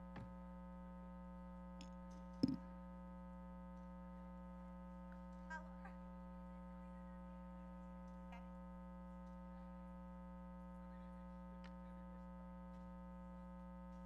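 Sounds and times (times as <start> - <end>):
faint electrical hum: 0.0 - 14.0.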